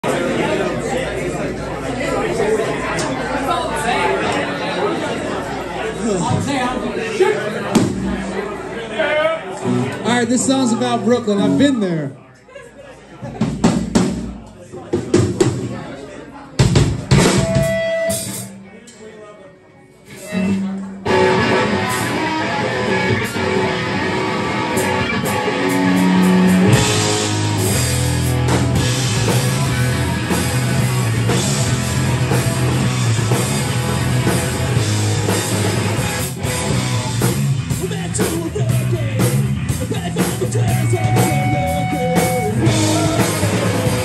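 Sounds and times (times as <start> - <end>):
drum kit: 7.7 - 8.4, 13.3 - 15.8, 16.6 - 18.7, 20.1 - 44.0
rock band playing: 7.7 - 8.6, 9.6 - 12.2, 16.6 - 18.8, 20.1 - 44.0
electric guitars: 9.6 - 11.7, 20.2 - 44.0
electric bass: 9.6 - 11.8, 20.3 - 44.0.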